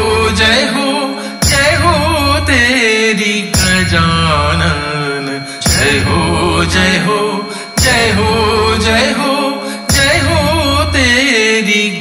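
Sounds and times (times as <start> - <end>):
devotional music with bass: 0.0 - 12.0.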